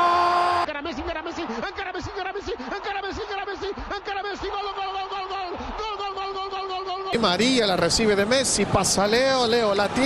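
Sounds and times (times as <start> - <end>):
commentator shouting excitedly: 0.0 - 8.0.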